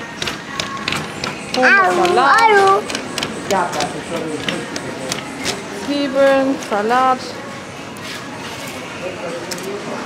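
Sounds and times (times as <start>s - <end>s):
supermarket background noise: 0.0s - 10.0s.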